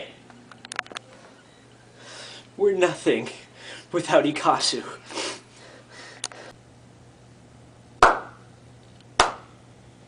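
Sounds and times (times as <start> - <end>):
sharp hand claps: 8.0 - 8.4, 9.2 - 9.5.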